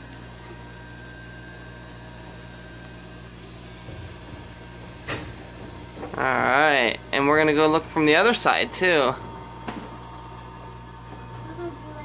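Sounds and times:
small electric motor humming: 0:00.0 - 0:12.0.

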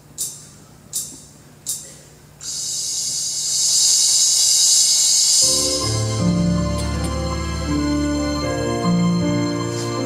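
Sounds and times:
cymbal roll: 0:02.4 - 0:07.7.

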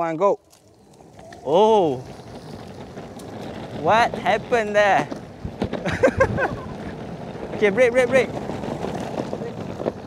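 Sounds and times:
skateboard wheels rolling on concrete: 0:00.0 - 0:10.0
wind on microphone: 0:01.0 - 0:10.0.

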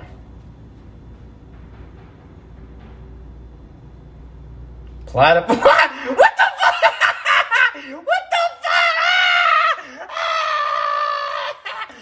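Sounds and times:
man crying out high: 0:05.5 - 0:12.0
man laughing: 0:05.5 - 0:12.0.

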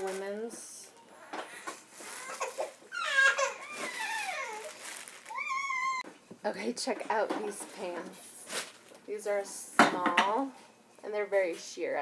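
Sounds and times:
plastic packaging crinkling: 0:01.7 - 0:06.0, 0:08.4 - 0:09.1
child whining: 0:02.0 - 0:06.1.

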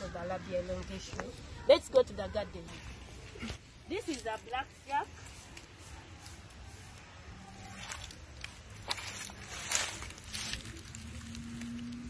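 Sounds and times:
dry leaves rustling and crackling: 0:03.6 - 0:12.0.

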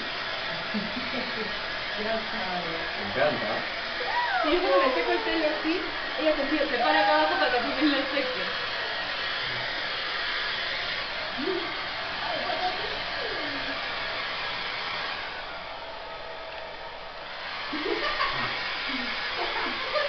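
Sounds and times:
hair dryer blowing: 0:00.0 - 0:20.0.

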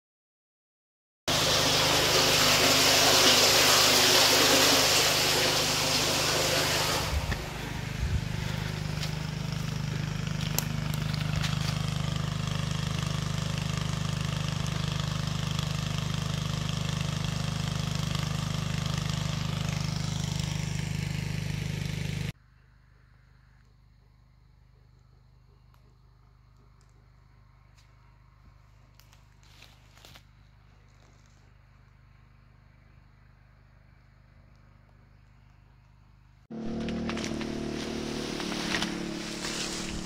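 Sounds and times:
water pouring and splashing: 0:01.3 - 0:08.8, 0:36.9 - 0:40.0
engine running steadily: 0:01.3 - 0:22.4, 0:36.5 - 0:40.0.

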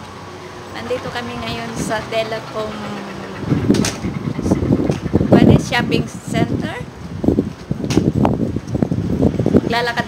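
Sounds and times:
wind buffeting microphone: 0:00.8 - 0:10.0.

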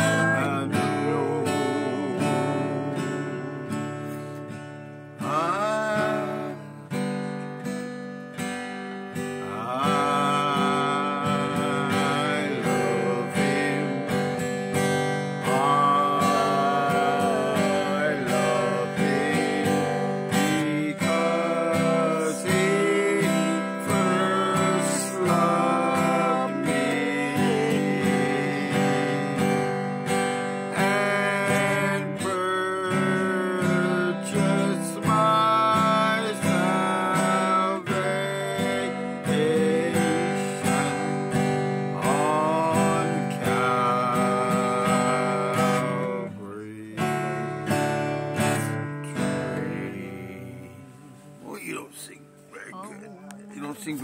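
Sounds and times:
man singing gospel song: 0:00.0 - 0:04.3, 0:05.2 - 0:06.8, 0:09.4 - 0:29.8, 0:30.6 - 0:52.2, 0:52.9 - 0:54.0
acoustic guitar strumming: 0:00.0 - 0:54.0.

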